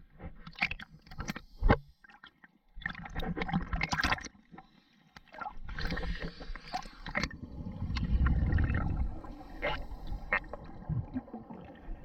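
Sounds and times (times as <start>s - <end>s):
water gurgling and sloshing: 0.0s - 12.0s.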